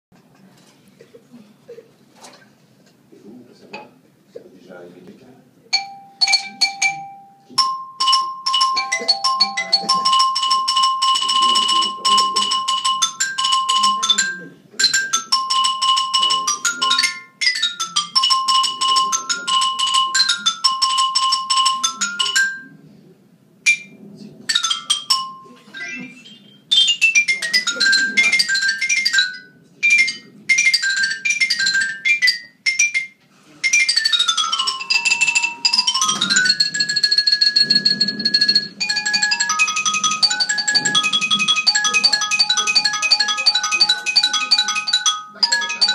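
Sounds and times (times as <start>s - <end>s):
xylophone struck with mallets: 5.7s - 22.8s, 23.7s - 45.9s.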